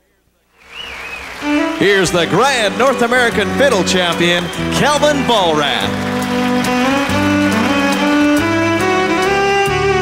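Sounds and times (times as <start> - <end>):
bass line: 1.4 - 10.0
fiddle playing bowed notes: 1.4 - 10.0.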